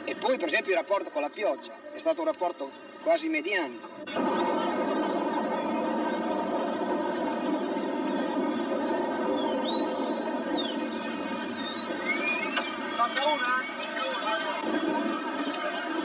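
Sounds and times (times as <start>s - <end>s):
high gliding whistle-like tones: 4.1s - 14.6s.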